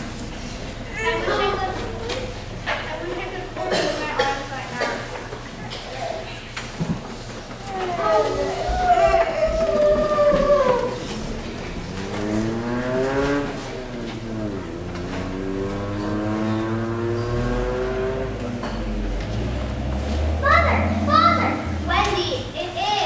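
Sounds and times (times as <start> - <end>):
child's sliding vocal tones: 7.7 - 11.3.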